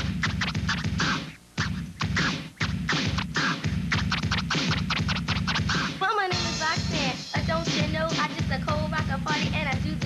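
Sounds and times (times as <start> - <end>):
hip hop drum beat: 0.0 - 10.0
vinyl record scratching: 0.0 - 10.0.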